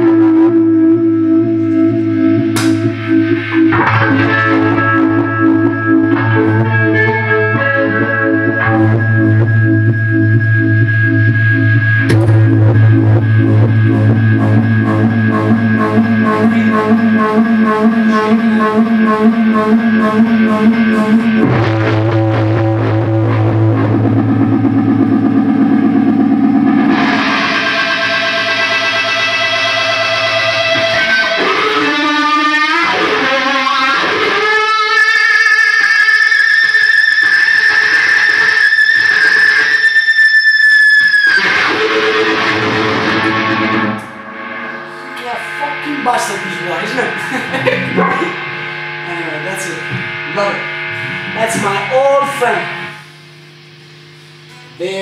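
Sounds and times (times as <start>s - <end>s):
fuzz electric guitar notes: 0.0s - 55.0s.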